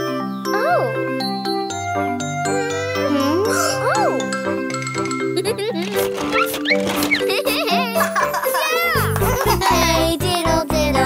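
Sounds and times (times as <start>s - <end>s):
cartoon children's music: 0.0s - 11.0s.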